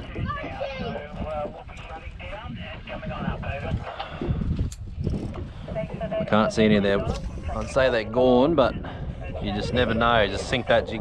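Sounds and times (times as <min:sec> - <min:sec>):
indistinct talking: 0:00.0 - 0:04.4, 0:05.4 - 0:11.0
wind rumble on microphone: 0:00.0 - 0:11.0.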